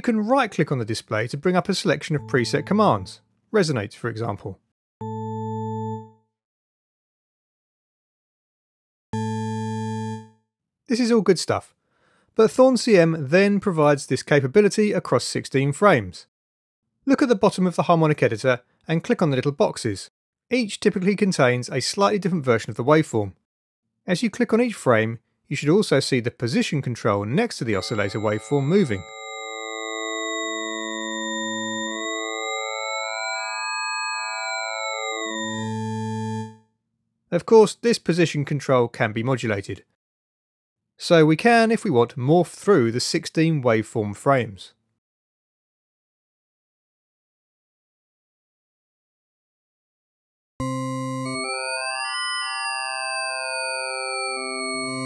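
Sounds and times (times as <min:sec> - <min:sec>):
low organ-like synthesizer note: 0:02.2 - 0:03.2, 0:27.8 - 0:36.6.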